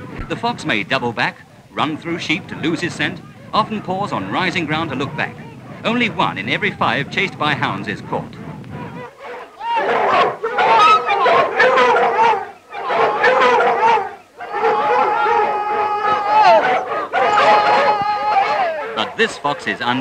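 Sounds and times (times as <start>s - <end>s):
hounds baying and howling: 8.3s - 20.0s.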